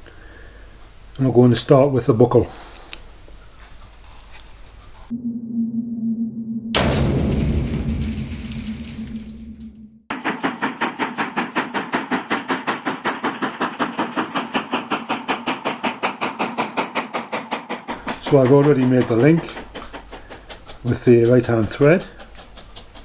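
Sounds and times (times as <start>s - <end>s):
steam locomotive low tone: 5.0s - 23.0s
locomotive exhaust beats: 6.8s - 23.0s
loud rush of steam: 10.1s - 22.4s.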